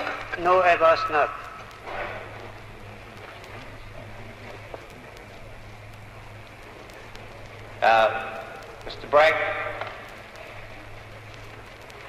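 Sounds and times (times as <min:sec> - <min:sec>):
faint crackle ticks: 0:00.0 - 0:12.0
recording hum and hiss: 0:00.0 - 0:12.0.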